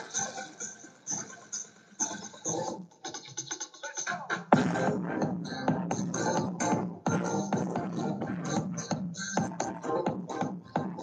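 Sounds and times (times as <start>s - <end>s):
electronic house music: 0.0s - 11.0s.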